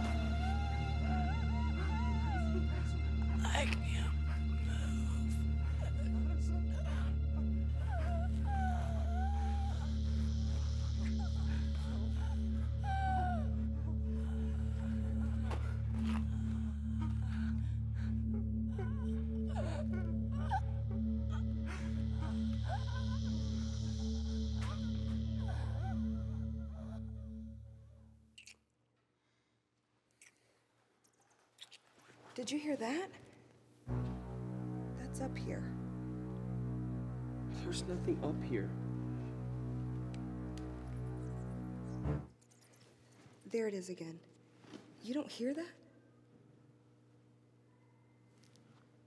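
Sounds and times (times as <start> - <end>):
low droning film score: 0.0 - 28.3, 33.9 - 42.7.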